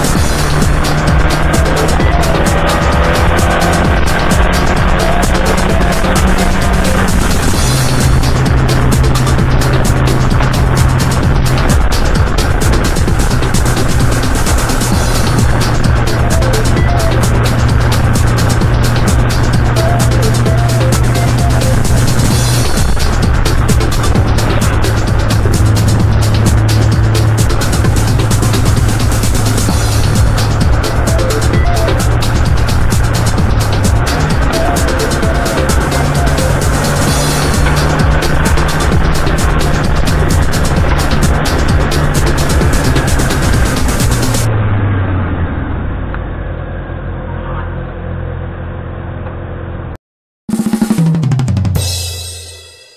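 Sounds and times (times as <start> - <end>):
background music: 0.0 - 44.5
car engine and road noise: 0.0 - 50.0.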